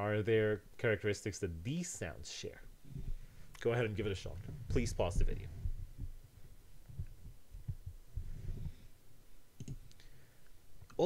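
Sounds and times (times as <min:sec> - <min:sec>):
soft low thuds: 0:02.8 - 0:09.0.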